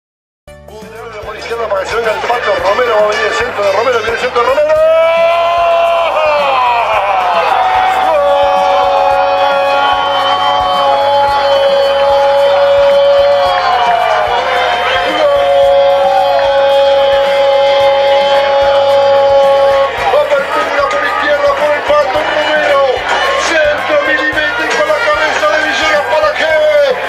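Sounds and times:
music: 0.5s - 27.0s
commentator's drawn-out goal cry: 0.8s - 27.0s.

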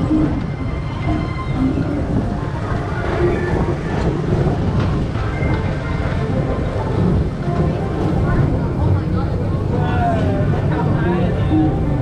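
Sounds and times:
ride car rumbling on track: 0.0s - 12.0s.

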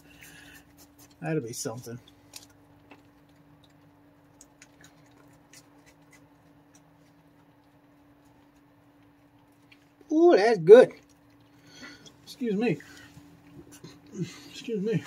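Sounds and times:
faint steady hum: 0.0s - 15.0s
raccoon chewing food: 0.0s - 15.0s.

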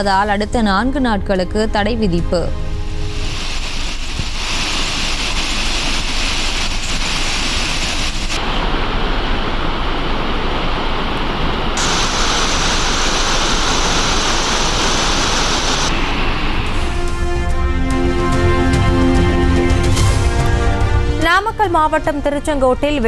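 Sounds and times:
waterfall crashing over rocks: 3.2s - 17.1s.

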